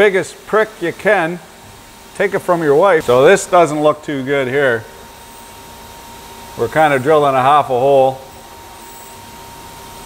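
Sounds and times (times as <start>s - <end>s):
faint constant whine: 0.0s - 10.0s
milling machine running: 0.0s - 10.0s.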